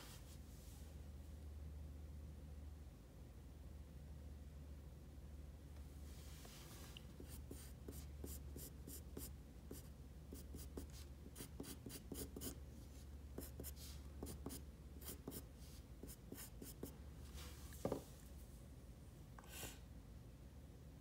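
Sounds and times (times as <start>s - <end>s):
pencil scratching on paper: 7.2s - 12.6s, 13.4s - 16.9s.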